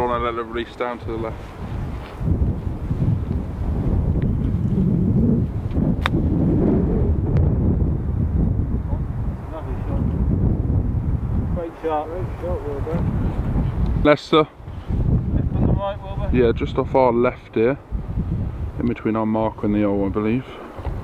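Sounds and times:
wind buffeting microphone: 0.0s - 21.0s
golf club striking ball: 6.0s - 6.2s.

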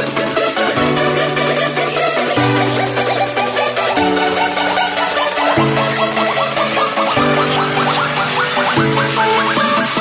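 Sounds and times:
electronic dance music: 0.0s - 10.0s.

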